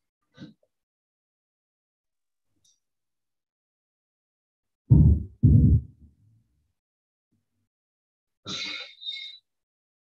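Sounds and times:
microphone being bumped: 4.9s - 6.0s.

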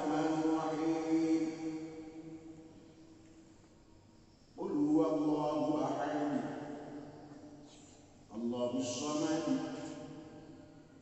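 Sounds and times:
man chanting over public address: 0.0s - 3.2s, 4.6s - 10.8s.

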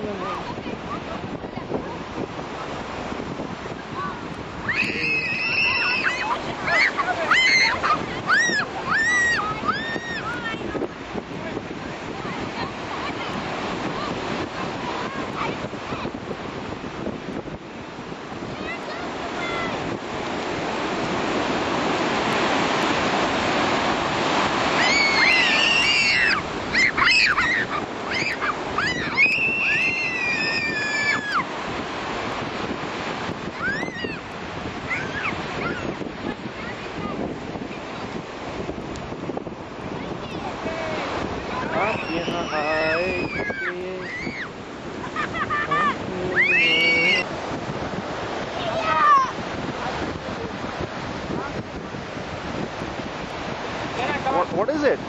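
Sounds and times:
ocean surf washing on beach: 0.0s - 55.0s
wind on microphone: 0.0s - 55.0s
children squealing: 4.6s - 10.5s, 24.7s - 31.5s, 33.6s - 34.2s, 34.9s - 35.9s, 41.5s - 47.3s.

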